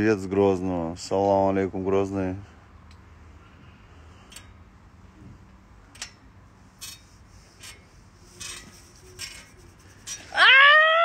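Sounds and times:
faint rustles and clicks: 3.5s - 10.4s
woman's high-pitched held cry: 10.3s - 11.0s.

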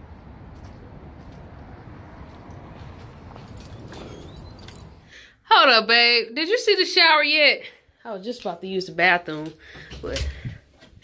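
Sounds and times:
footsteps on pavement: 0.0s - 4.8s.

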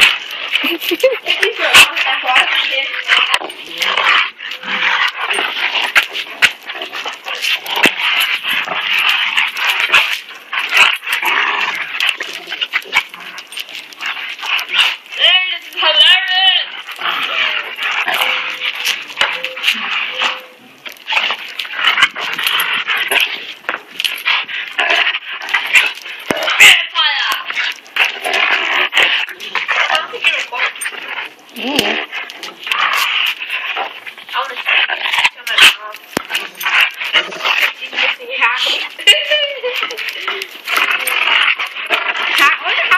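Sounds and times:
dogs growling: 0.0s - 15.9s, 16.6s - 42.9s
dog whining: 17.2s - 20.8s.

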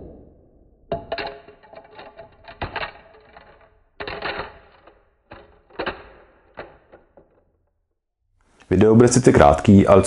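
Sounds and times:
discs clattering on wooden bench: 0.9s - 7.6s.

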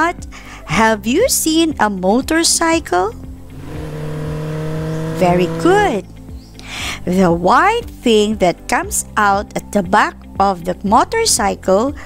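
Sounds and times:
vehicle engine humming: 3.4s - 6.0s.

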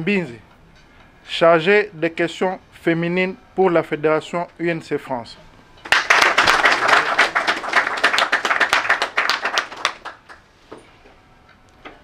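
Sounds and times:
audience applauding: 5.9s - 10.5s.

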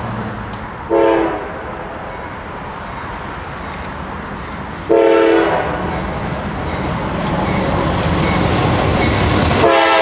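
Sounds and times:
approaching train background noise: 0.0s - 10.0s
locomotive air horn blast: 0.9s - 1.6s, 4.9s - 5.9s, 9.6s - 10.0s.

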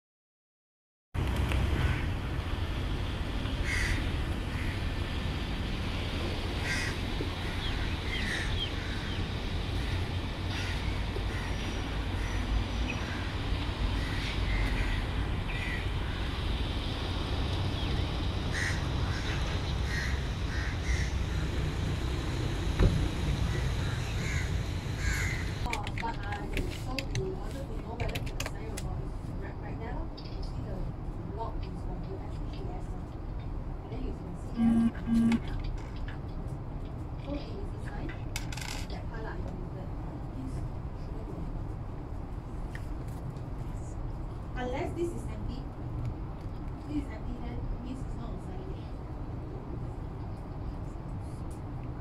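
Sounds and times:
wind and sea rumble: 1.2s - 52.0s
bird calling: 6.6s - 16.4s, 17.7s - 21.7s, 23.4s - 25.7s.

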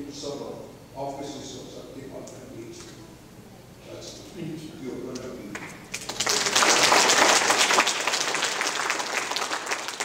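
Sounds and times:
audience applauding: 5.6s - 10.0s.

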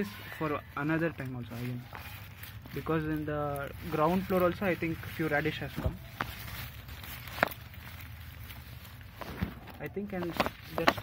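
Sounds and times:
leaves and stems rustling: 0.0s - 11.0s.

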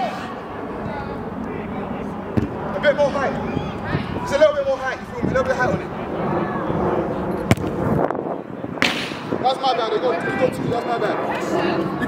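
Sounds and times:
ball impact: 2.4s - 2.6s, 7.5s - 7.8s
football kick thud: 2.4s - 2.6s, 7.5s - 7.7s, 8.8s - 9.2s.

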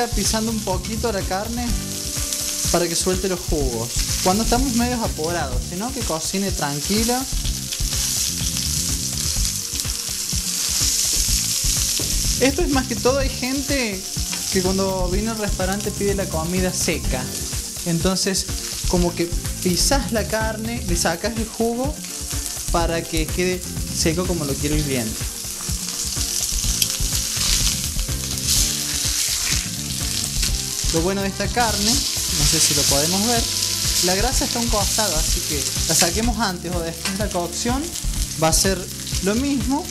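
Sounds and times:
meat sizzling in a frying pan: 0.0s - 39.9s
utensil working meat in pan: 0.0s - 39.9s.

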